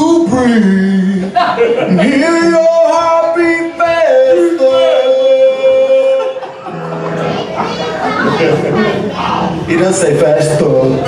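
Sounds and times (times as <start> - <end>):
men singing in harmony: 0.4 - 7.0
men talking and laughing: 1.1 - 2.4, 5.6 - 9.3.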